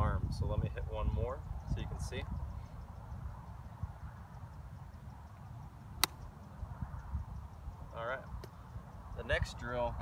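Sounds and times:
golf club striking ball: 0:06.0 - 0:06.2.

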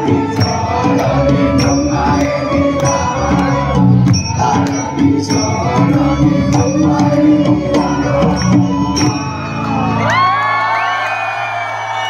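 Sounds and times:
audience whooping and cheering: 0:07.7 - 0:12.0.

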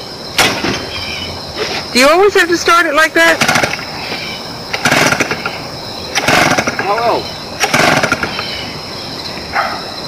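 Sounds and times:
chainsaw starter cord pulls: 0:03.4 - 0:03.8, 0:04.7 - 0:08.5.

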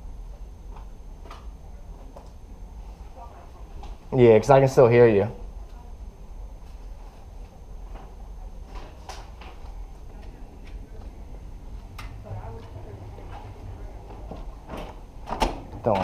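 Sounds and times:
building interior hum: 0:00.0 - 0:16.0
faint muffled voices: 0:05.5 - 0:14.8.

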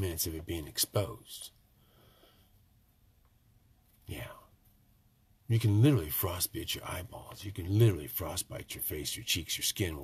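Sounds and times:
man saying yeah softly: 0:04.0 - 0:04.5.

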